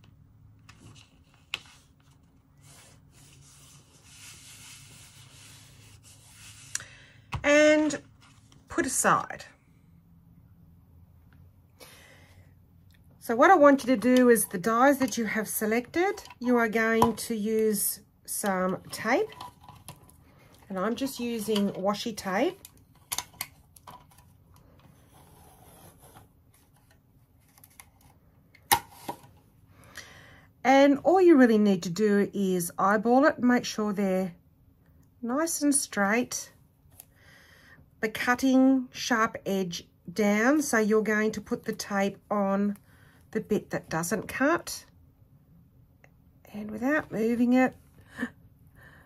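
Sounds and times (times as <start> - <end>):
hands rubbing card: 2.6 - 6.8.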